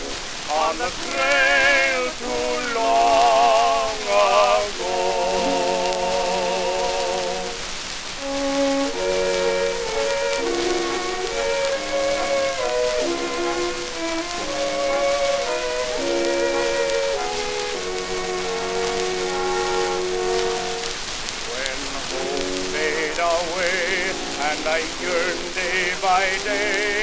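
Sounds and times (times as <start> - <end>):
orchestral music: 0.0 - 7.6, 8.2 - 27.0
disc surface hiss: 0.0 - 27.0.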